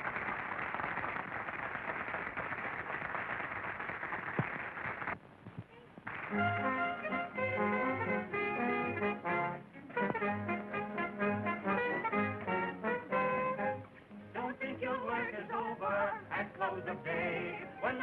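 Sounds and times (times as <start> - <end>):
theatre band with brass: 6.2 - 14.8.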